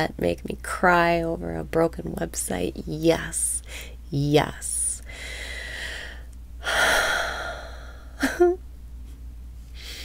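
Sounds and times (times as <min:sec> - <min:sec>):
woman breathing deeply: 0:05.1 - 0:08.2, 0:09.7 - 0:10.0.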